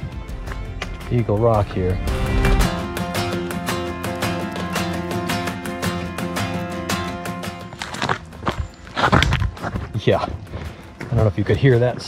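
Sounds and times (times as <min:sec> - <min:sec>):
boot steps on rocky dirt trail: 0:00.0 - 0:01.9, 0:07.3 - 0:12.0
background music with steady beat: 0:00.0 - 0:12.0
boot scraping on rocky ground: 0:07.4 - 0:12.0.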